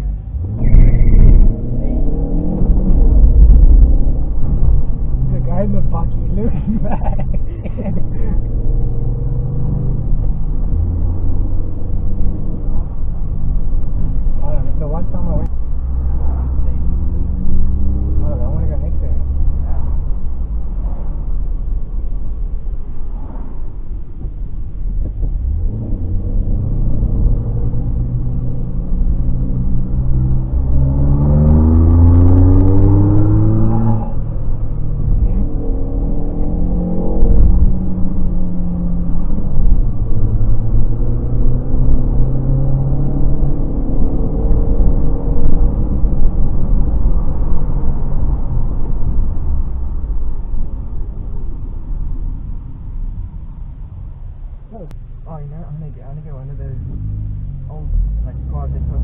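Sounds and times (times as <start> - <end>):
car engine accelerating: 0.0 - 59.0
road rumble: 0.0 - 59.0.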